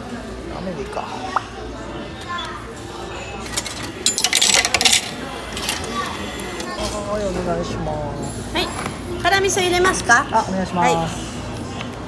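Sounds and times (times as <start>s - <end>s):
coins clattering into tray: 3.5s - 5.8s.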